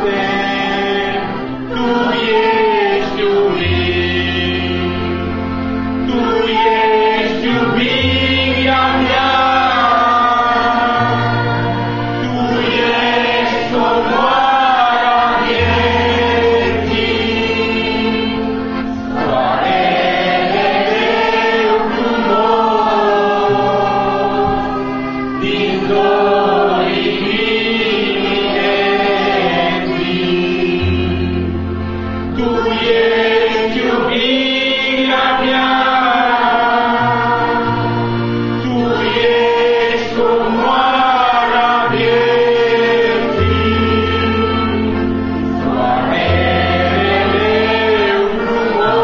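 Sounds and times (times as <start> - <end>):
group singing worship song: 0.0 - 49.0
long held bass notes: 0.0 - 49.0.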